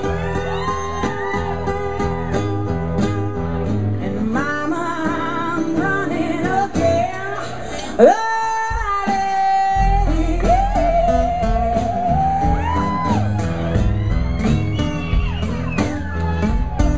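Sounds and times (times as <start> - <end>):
acoustic guitars: 0.0 - 16.9
woman singing with vibrato: 4.1 - 13.1.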